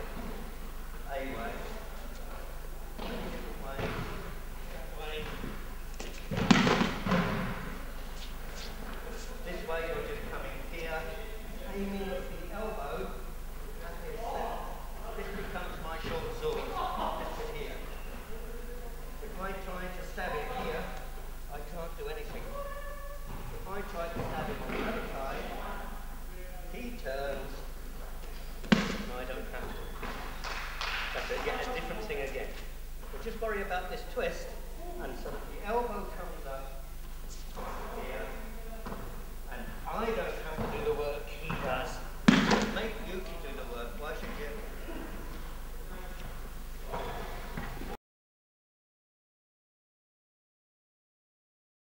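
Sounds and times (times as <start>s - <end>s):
man talking: 1.0s - 6.4s, 8.5s - 22.6s, 23.6s - 27.8s, 28.7s - 30.0s, 31.2s - 45.2s.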